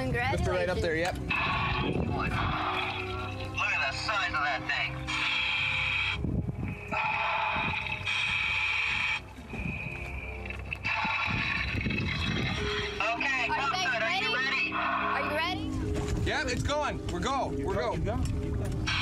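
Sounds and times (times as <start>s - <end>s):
bubbling exhalations: 9.0s - 12.9s.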